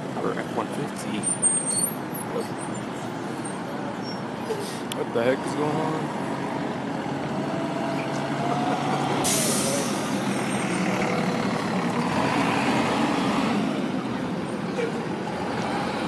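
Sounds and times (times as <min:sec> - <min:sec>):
bus engine running: 0:00.0 - 0:16.0
air brakes hiss: 0:09.2 - 0:10.1.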